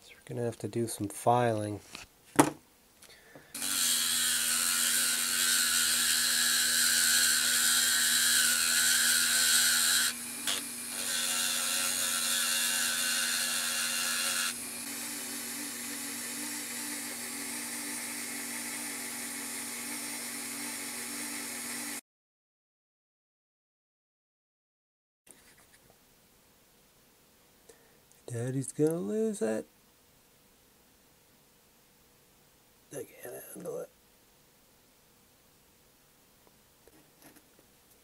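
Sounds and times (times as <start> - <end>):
rotary tool humming: 3.5 - 22.0.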